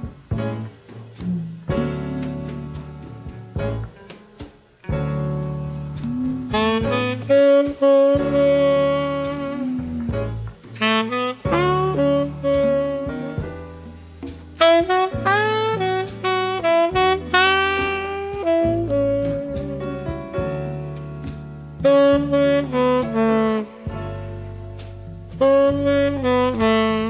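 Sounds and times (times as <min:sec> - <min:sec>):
saxophone melody: 0:00.0 - 0:03.8, 0:04.9 - 0:14.0, 0:14.6 - 0:27.0
bass line: 0:00.0 - 0:27.0.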